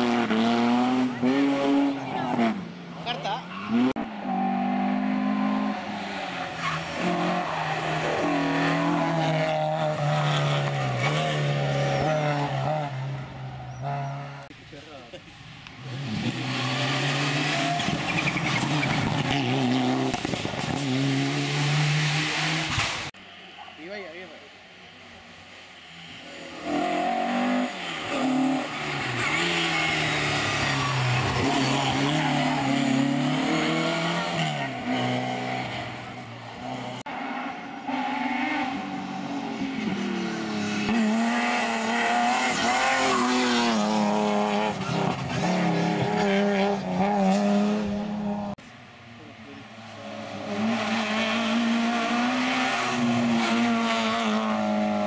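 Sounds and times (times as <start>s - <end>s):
rally car engines revving: 0.0s - 23.2s, 25.0s - 55.0s.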